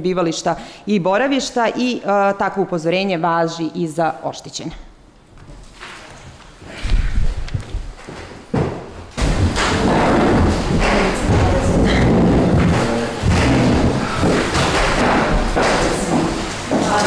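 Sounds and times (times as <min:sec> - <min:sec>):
bumping and thudding: 0:06.9 - 0:17.0.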